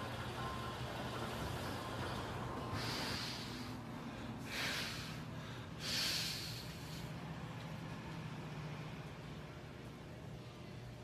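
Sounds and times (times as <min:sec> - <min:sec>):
man breathing hard: 0:02.6 - 0:07.3.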